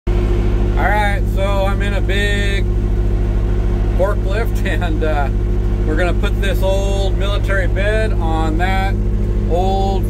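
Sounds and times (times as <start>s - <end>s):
forklift engine running: 0.1s - 10.0s
man talking: 0.8s - 2.7s, 4.0s - 10.0s.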